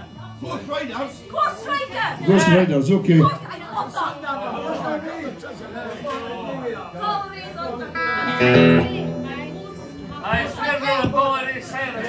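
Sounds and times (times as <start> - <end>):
electric guitar chords ringing: 7.9 - 10.8.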